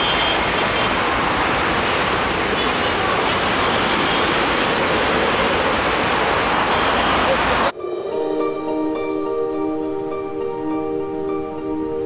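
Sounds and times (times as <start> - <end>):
rail and road traffic rumble: 0.0 - 7.7.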